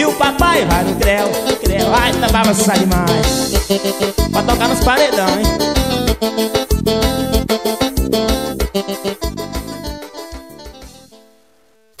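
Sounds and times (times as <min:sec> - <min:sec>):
electronic keyboard music: 0:00.0 - 0:11.2
drum beat: 0:00.4 - 0:05.4.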